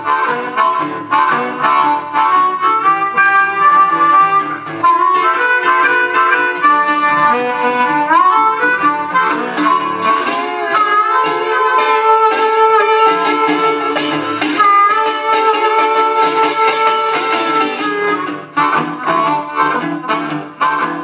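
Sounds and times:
blues harmonica wailing: 0.0 - 21.0
resonator guitar blues accompaniment: 0.0 - 21.0.

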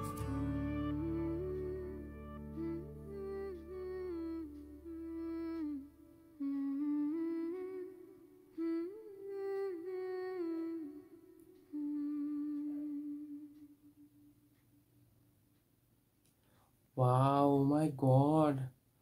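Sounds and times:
song accompaniment: 0.0 - 6.5
person humming a melody: 0.0 - 14.3.

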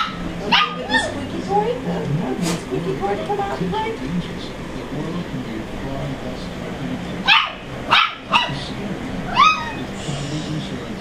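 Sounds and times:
dog yipping: 0.0 - 1.2, 7.2 - 8.6, 9.3 - 9.9.

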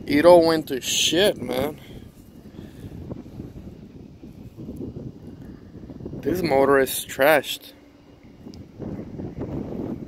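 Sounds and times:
low uneven outdoor rumble: 0.0 - 10.0.

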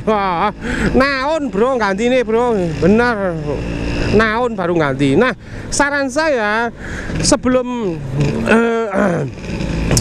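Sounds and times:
scooter engine running: 0.0 - 10.0
man hesitating: 8.0 - 9.4.

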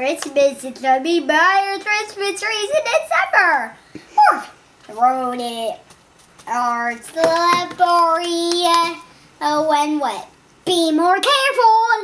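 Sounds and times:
boy sing-song voice: 6.5 - 10.1.

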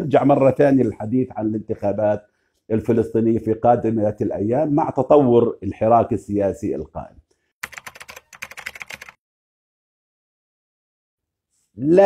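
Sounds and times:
computer keyboard typing clicks: 7.6 - 9.2.

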